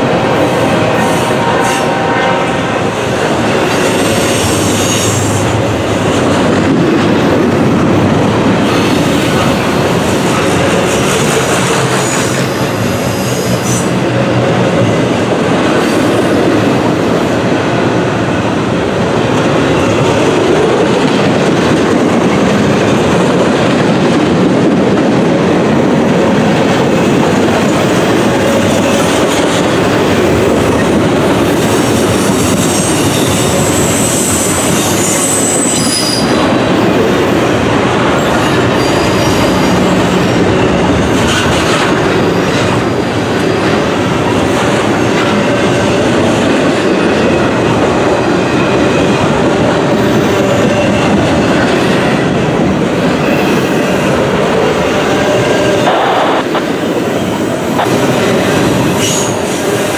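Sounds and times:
freight train rumbling past: 0.0s - 59.9s
high-pitched wheel squeal: 32.4s - 36.4s.

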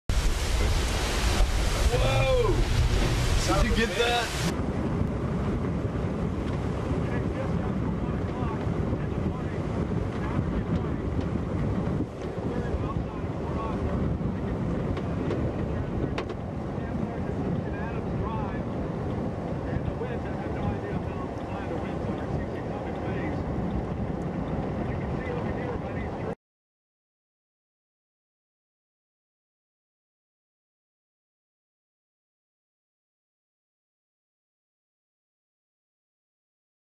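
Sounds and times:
wind buffeting microphone: 0.1s - 26.4s.

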